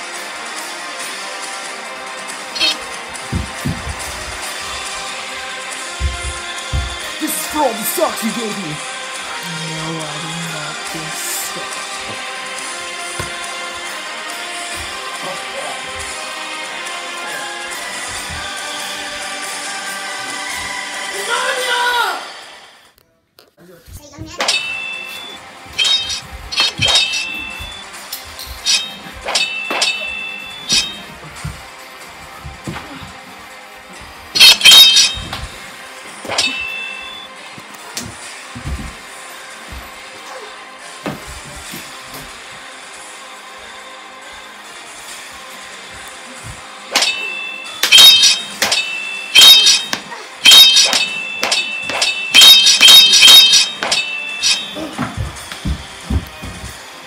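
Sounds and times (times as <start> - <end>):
background music: 0.0 - 23.1, 24.1 - 57.0
sharp metallic clangs: 24.3 - 27.9, 28.5 - 31.2, 34.4 - 35.6, 36.2 - 37.3, 46.9 - 55.6.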